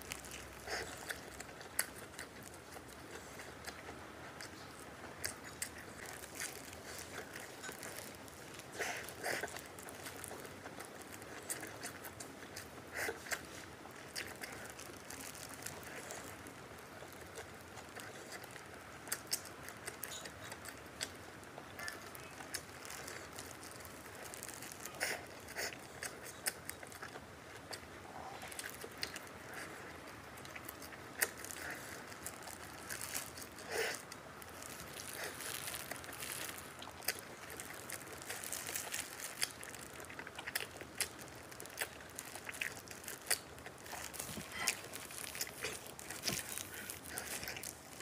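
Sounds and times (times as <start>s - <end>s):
chewing and biting food: 0.0s - 48.0s
crisp crunches: 0.0s - 48.0s.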